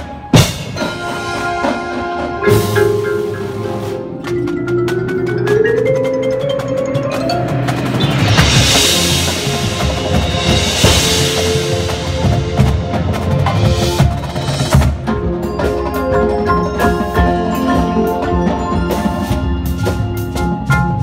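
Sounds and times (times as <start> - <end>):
snare tenor and bass drums: 0.0 - 5.0, 7.7 - 16.1
marimbas and vibraphones: 0.0 - 21.0.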